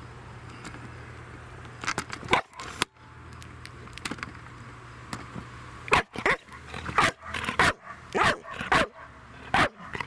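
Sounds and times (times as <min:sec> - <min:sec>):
dog barking: 0:07.0 - 0:10.0.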